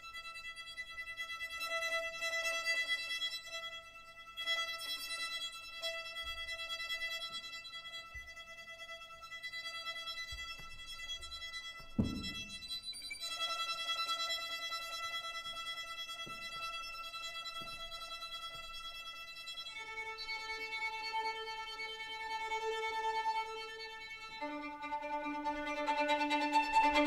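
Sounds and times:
solo violin long notes: 0.0s - 27.0s
short low thud: 11.9s - 12.8s.

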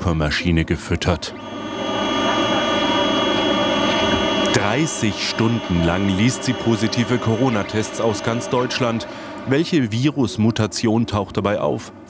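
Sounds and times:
machine hum with high whine: 1.3s - 12.0s.

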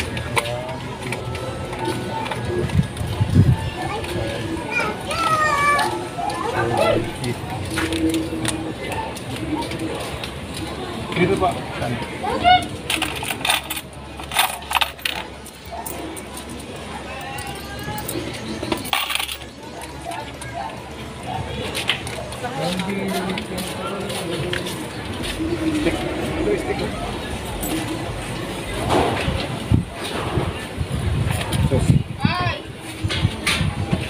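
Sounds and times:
children's voices: 3.2s - 7.2s
metal pieces clinking: 18.7s - 19.5s.

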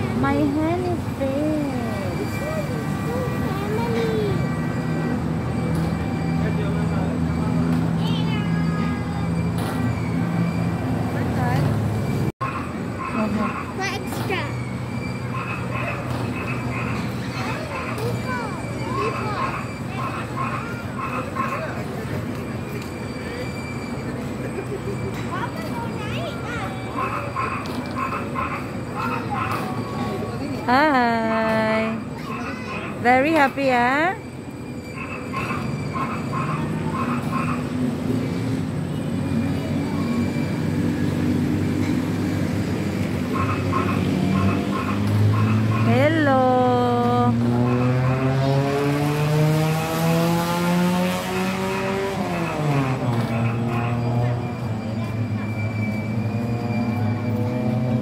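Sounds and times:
carousel drive humming: 0.0s - 58.0s
high voice calling: 34.8s - 38.2s, 41.4s - 48.7s.

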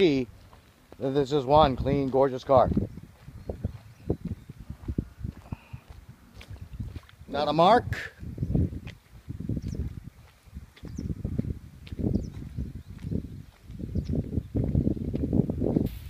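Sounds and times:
footsteps on wet pavement: 0.0s - 7.6s, 8.2s - 15.4s.

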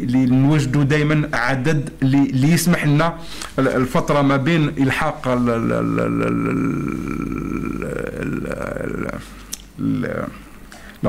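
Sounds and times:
man's creaky vocal hesitation: 5.1s - 10.5s.

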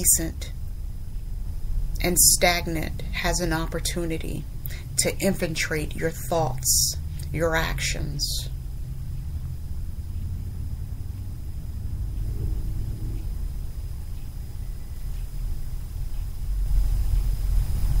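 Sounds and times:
low background rumble: 0.0s - 18.0s.

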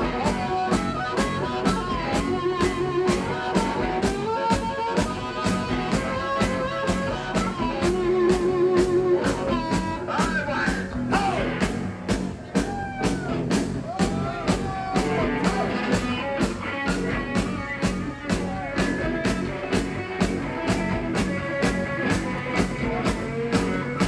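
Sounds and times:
harmonica notes bending: 0.0s - 11.5s, 14.9s - 24.0s
drum kit beat: 0.0s - 24.0s
electric guitar: 0.0s - 24.0s.

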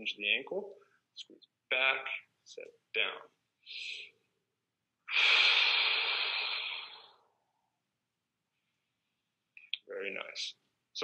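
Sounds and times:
man exhaling forcefully: 5.1s - 7.2s.

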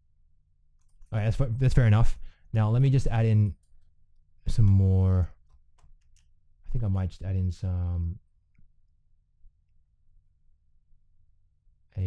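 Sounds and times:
computer mouse clicks: 0.8s - 1.1s.

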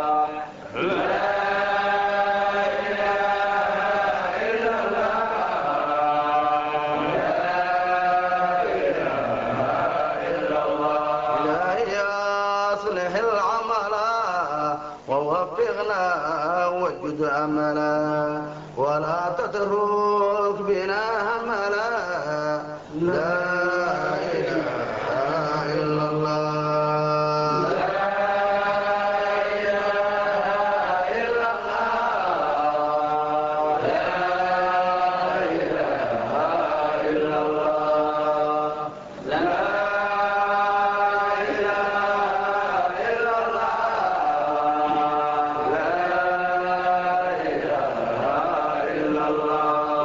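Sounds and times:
devotional chanting: 0.0s - 50.0s.

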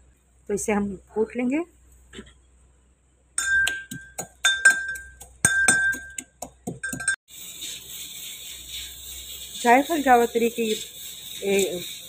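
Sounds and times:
pestle pounding in metal mortar: 3.4s - 7.2s
steady hiss: 7.3s - 12.0s.

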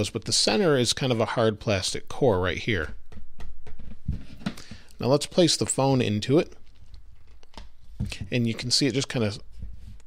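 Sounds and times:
plastic phone case handling: 3.6s - 5.0s, 6.6s - 8.7s.

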